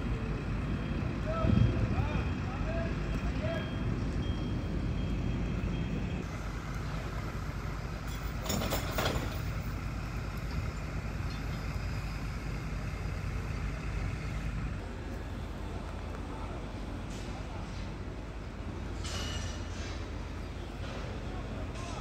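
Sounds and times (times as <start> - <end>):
diesel machinery rumbling: 0.0 - 22.0.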